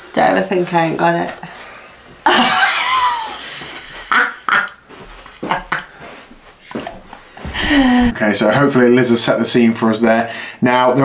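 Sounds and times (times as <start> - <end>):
woman laughing: 2.2 - 4.7, 5.4 - 6.0, 7.5 - 8.2.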